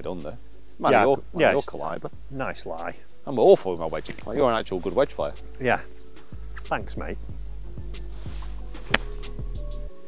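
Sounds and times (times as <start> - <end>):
background music: 0.0 - 10.0
golf club striking ball: 8.8 - 9.4.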